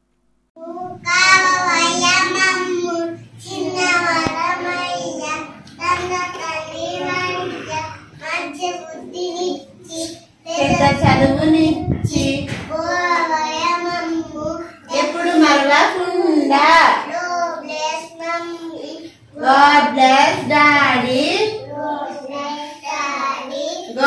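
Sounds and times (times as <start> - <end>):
young children singing: 0.6 - 15.6, 16.6 - 24.0.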